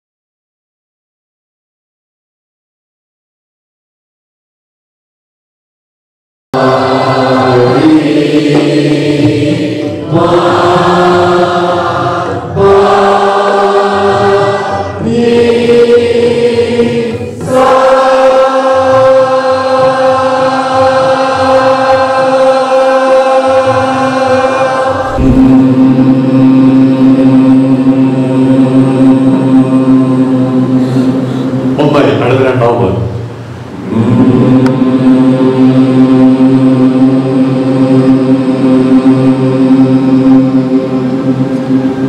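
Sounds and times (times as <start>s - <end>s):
many voices chanting: 6.6s - 31.8s, 33.8s - 42.0s.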